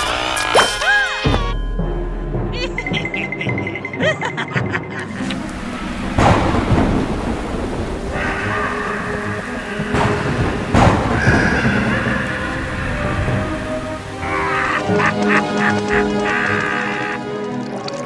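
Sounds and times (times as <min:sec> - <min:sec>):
dramatic music: 0:00.0 - 0:18.0
heavy rain hissing: 0:05.1 - 0:17.6
thunder cracks: 0:05.4 - 0:14.4.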